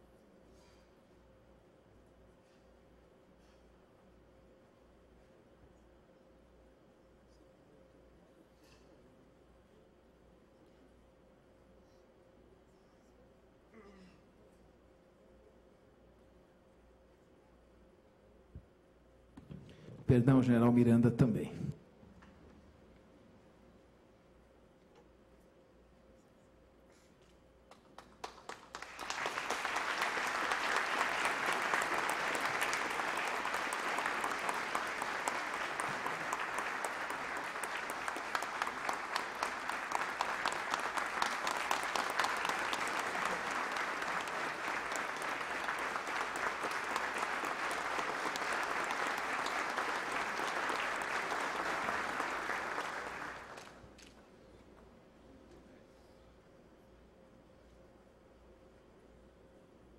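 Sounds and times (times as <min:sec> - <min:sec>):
audience applauding: 0:28.0 - 0:54.1.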